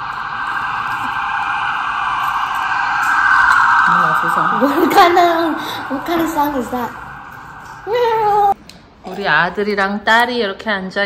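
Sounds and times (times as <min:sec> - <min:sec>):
steady rushing noise: 0:00.0 - 0:08.6.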